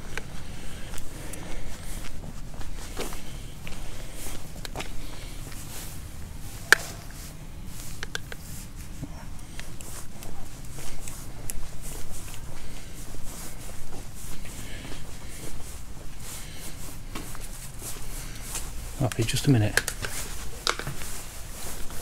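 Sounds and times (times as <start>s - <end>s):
footsteps on wet grass and paving: 0.0s - 22.0s.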